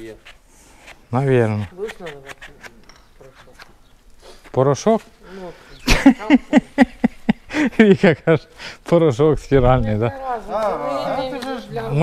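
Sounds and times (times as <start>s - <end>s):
men laughing: 5.5s - 8.6s.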